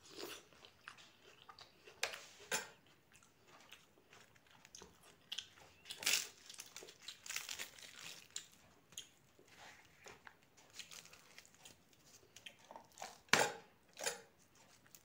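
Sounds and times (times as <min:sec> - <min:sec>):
close chewing with crisp crunches: 0:00.0 - 0:15.0.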